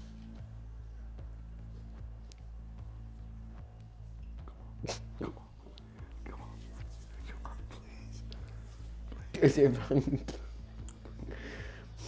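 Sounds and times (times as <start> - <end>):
quiet background music: 0.0 - 12.0
mouth sounds: 4.4 - 8.3
soft whispering: 4.4 - 9.7.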